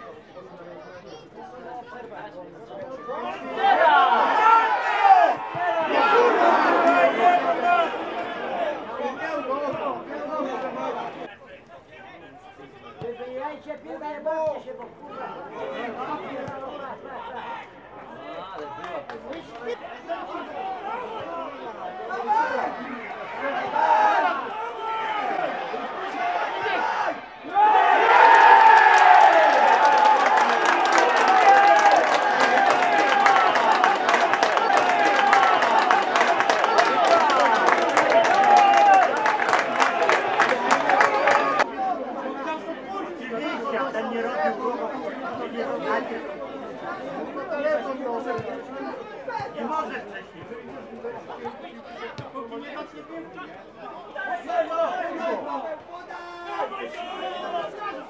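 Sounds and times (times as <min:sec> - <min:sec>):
stadium crowd cheering: 0:01.1 - 0:11.4, 0:15.0 - 0:58.0
crowd clapping: 0:18.6 - 0:19.8, 0:28.0 - 0:41.7.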